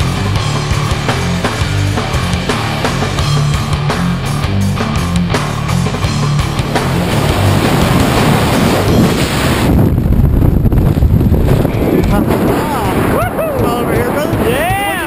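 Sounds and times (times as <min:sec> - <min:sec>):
wind rushing over microphone: 0:06.4 - 0:15.0
person whooping: 0:13.0 - 0:13.8.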